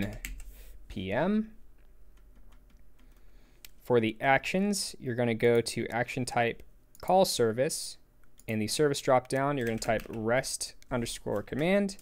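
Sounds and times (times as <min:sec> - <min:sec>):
man speaking: 0:00.0 - 0:00.2, 0:00.9 - 0:01.6, 0:03.8 - 0:12.0
keyboard and mouse clicks: 0:09.2 - 0:10.2.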